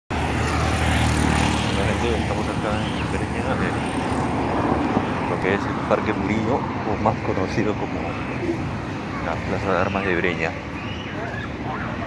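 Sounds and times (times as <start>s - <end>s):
city traffic rumble: 0.1s - 12.0s.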